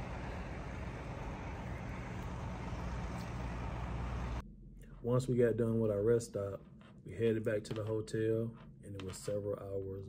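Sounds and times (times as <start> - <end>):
idling buses and trucks rumbling: 0.0 - 4.4
outdoor hiss: 0.0 - 4.4.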